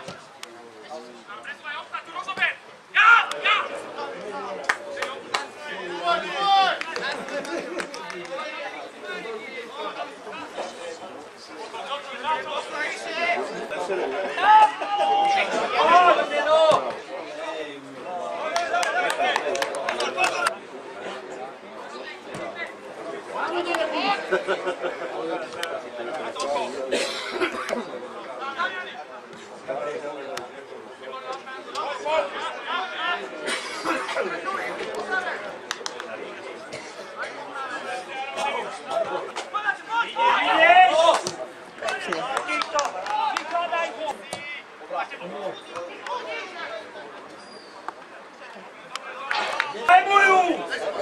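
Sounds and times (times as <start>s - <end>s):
people calling out and chattering: 0.0s - 51.0s
loud high held shout: 1.7s - 3.8s, 14.3s - 16.8s, 39.5s - 41.2s, 49.6s - 50.8s.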